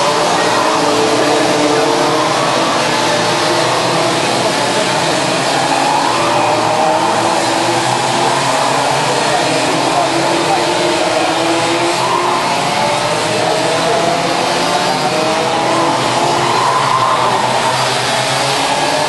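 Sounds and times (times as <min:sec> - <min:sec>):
kart engines racing: 0:00.0 - 0:19.0.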